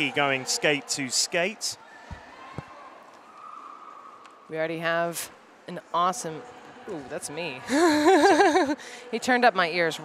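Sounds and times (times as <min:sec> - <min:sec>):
sports hall ambience: 0:00.0 - 0:10.0.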